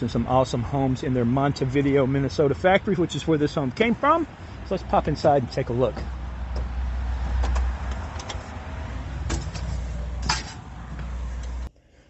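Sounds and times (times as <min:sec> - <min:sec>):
footsteps on wooden steps: 0:09.2 - 0:11.6.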